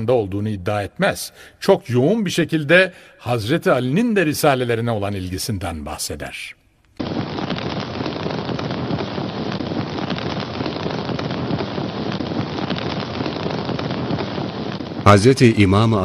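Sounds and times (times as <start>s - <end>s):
fire crackling: 6.8s - 16.0s.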